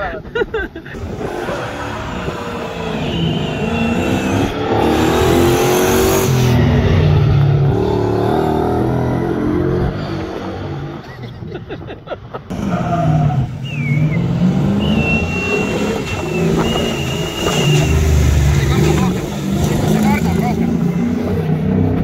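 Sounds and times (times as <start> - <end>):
truck engine driving past: 12.5 - 22.0.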